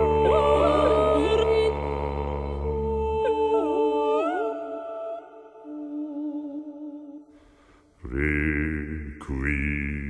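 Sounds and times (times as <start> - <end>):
deep sustained chanted tone: 0.0 - 7.3, 8.0 - 10.0.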